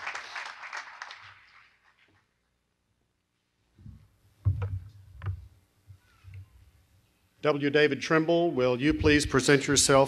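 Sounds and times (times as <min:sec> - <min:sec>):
dull thumps on microphone: 0:03.8 - 0:05.5.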